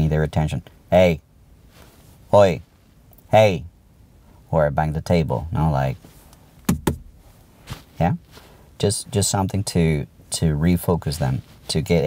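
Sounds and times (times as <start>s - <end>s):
sharp knocks on hard surface: 6.7s - 7.1s.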